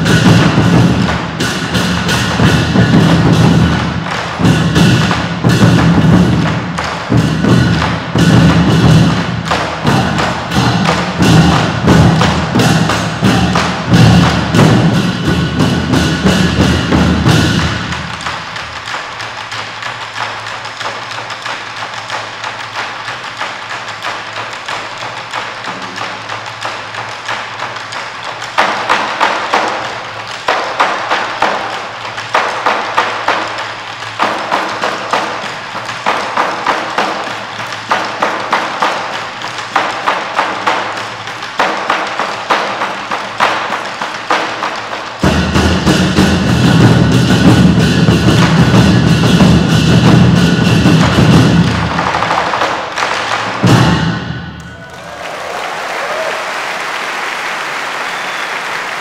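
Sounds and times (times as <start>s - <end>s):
drum ensemble playing: 0.0s - 57.3s.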